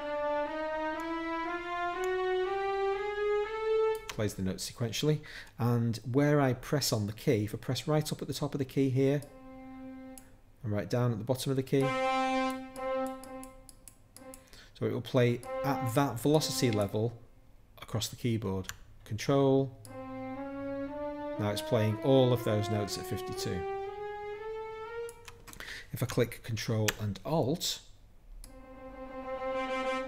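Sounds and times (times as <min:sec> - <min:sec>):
sampled brass note: 0:00.0 - 0:04.1, 0:11.8 - 0:13.6, 0:15.2 - 0:17.0, 0:19.9 - 0:25.2, 0:28.5 - 0:30.0
mouse clicking: 0:12.8 - 0:14.5.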